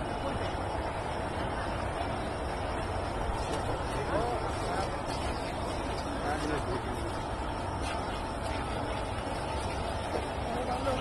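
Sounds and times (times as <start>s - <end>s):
steady low outdoor noise: 0.0s - 11.0s.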